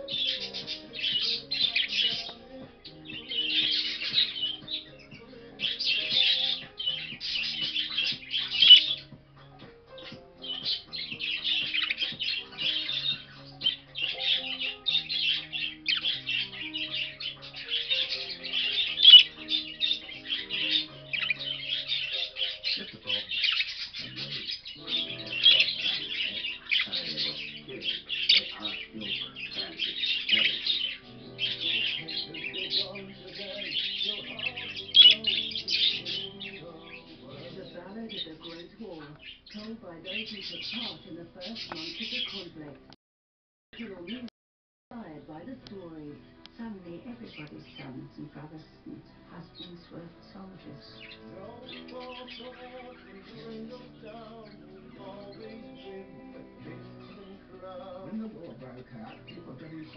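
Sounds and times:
budgerigar loud calls: 0.0 - 42.6, 49.4 - 59.9
budgerigar chattering song: 0.0 - 42.7, 47.0 - 59.9
soft background music: 0.0 - 42.9, 43.8 - 44.3, 44.9 - 59.9.

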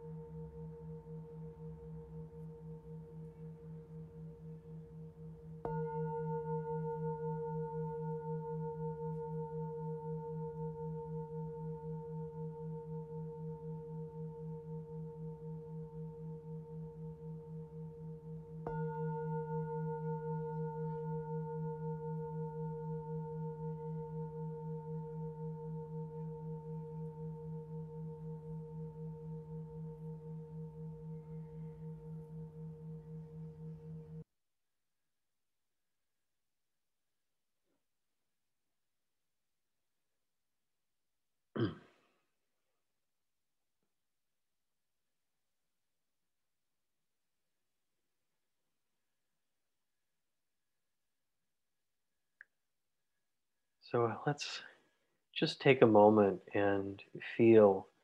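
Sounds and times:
singing bowl ringing: 0.0 - 34.2.

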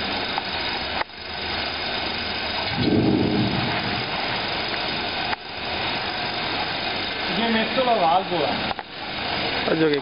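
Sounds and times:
roller conveyor humming: 0.0 - 10.0.

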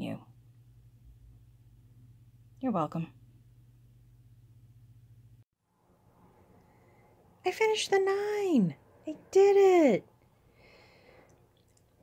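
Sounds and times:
faint soft breath: 6.4 - 7.4, 10.3 - 11.5.

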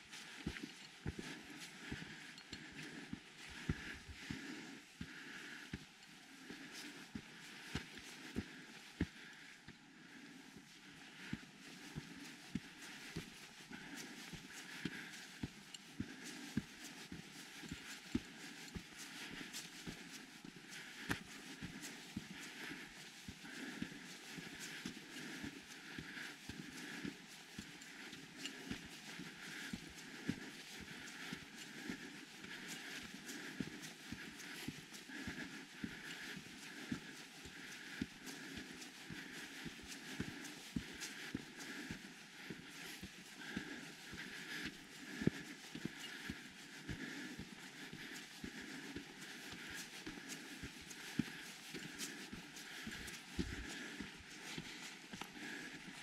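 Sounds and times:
footsteps on dirt trail: 0.0 - 5.9, 10.6 - 56.0.

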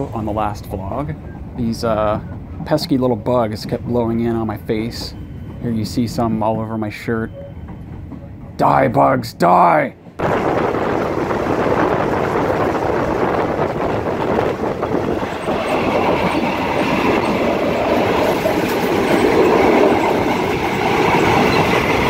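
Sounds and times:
train wheels on track rattling: 0.0 - 22.0.

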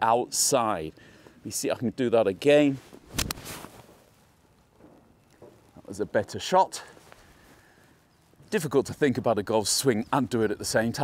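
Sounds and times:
club swishing through grass: 2.9 - 3.9.

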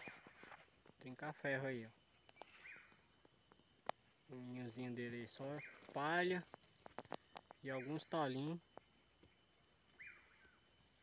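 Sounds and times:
high-pitched insect hum: 0.0 - 11.0.

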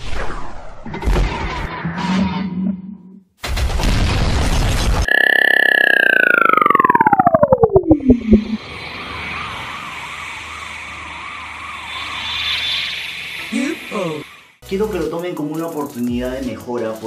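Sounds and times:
tone gliding down into pulses: 5.1 - 9.2
warbling hum: 5.1 - 11.8
hiss: 9.2 - 14.6.

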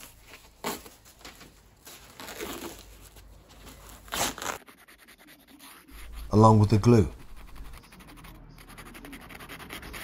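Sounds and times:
cloth rustling and tearing: 0.0 - 4.8.

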